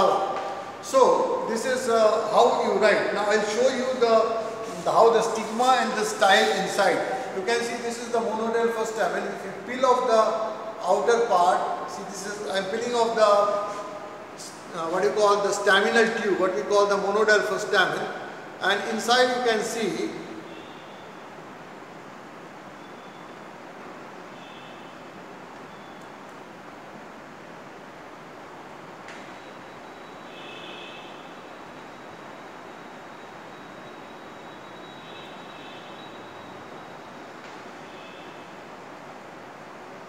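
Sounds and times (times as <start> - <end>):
room noise hiss: 0.0 - 40.0.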